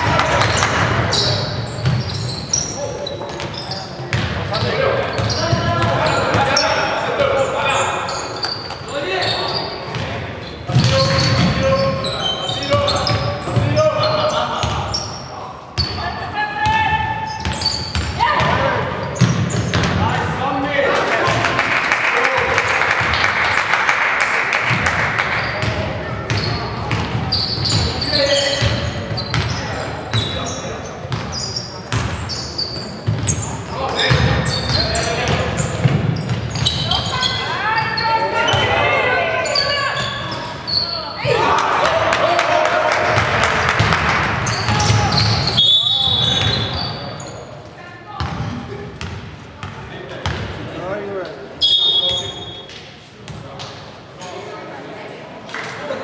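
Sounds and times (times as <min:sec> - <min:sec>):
players shouting: 0:40.9 - 0:45.6.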